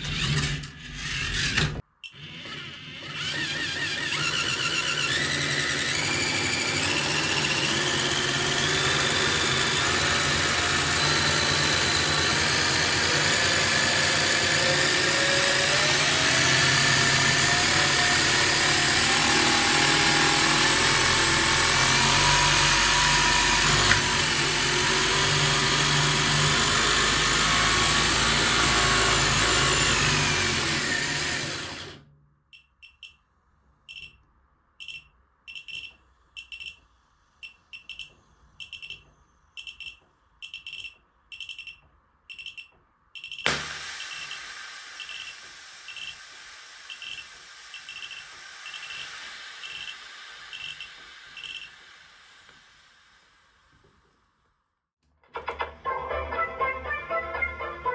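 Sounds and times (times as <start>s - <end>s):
electric toy motor running: 2.2s - 32.0s, 44.0s - 52.9s
short high beeps: 34.8s - 36.8s, 37.4s - 43.5s.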